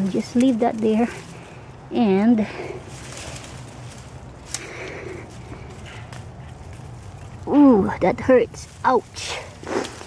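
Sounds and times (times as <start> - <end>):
leaves and canes rustling: 0.0 - 10.0
steady low rumble: 0.0 - 10.0.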